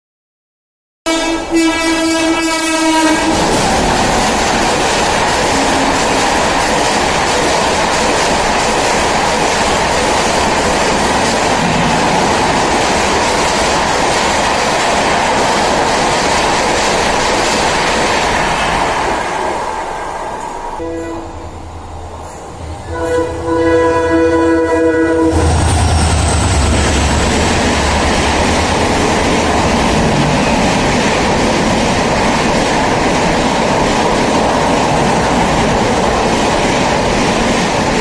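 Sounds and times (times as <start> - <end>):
locomotive horn: 1.1 - 3.5, 20.8 - 21.4, 22.8 - 25.8
train passing at high speed: 1.1 - 38.0.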